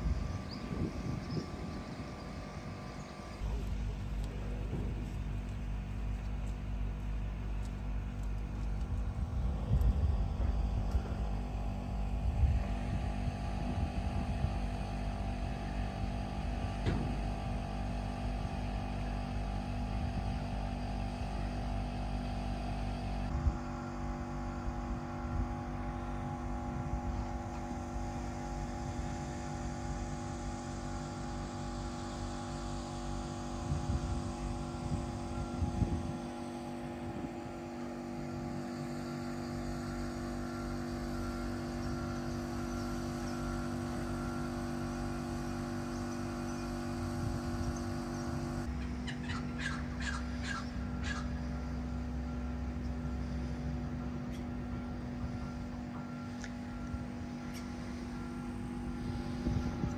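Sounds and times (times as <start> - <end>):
boat engine running steadily: 0.0 - 59.9.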